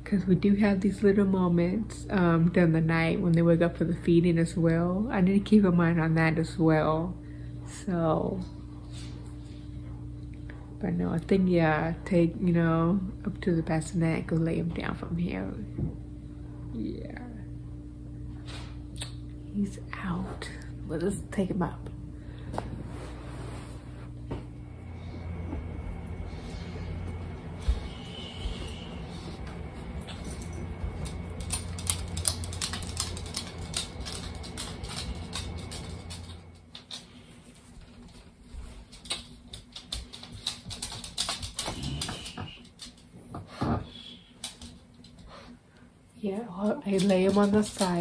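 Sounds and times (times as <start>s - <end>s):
steady low hum: 0.0s - 48.0s
footsteps: 22.5s - 42.6s.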